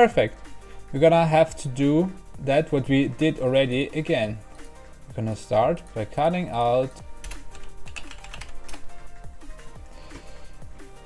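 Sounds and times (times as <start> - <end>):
quiet background music: 0.0 - 11.0
computer keyboard typing: 7.0 - 8.9.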